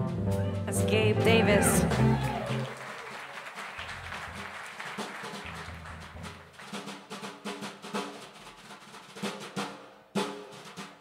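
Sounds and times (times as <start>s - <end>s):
jazz drum kit: 0.0s - 11.0s
audience applause: 1.1s - 7.2s.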